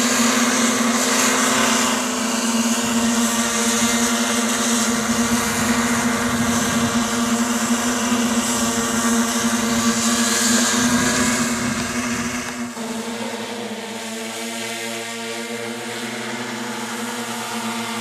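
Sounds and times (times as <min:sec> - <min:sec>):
model helicopter rotor hum: 0:00.0 - 0:18.0.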